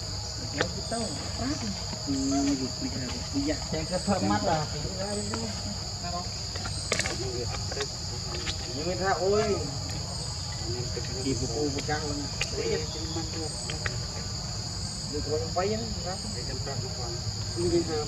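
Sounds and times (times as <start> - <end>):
insect chorus droning: 0.0 - 18.0
man speaking: 2.1 - 5.3.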